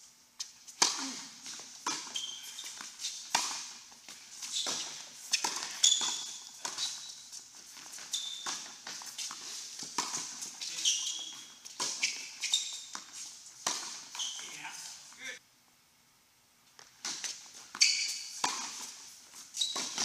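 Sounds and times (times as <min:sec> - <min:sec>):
shoes squeaking on court: 0:00.4 - 0:15.3, 0:16.8 - 0:20.0
ball bouncing on court: 0:04.6 - 0:07.0, 0:16.8 - 0:18.8, 0:19.6 - 0:20.0
racket striking ball: 0:18.1 - 0:18.8.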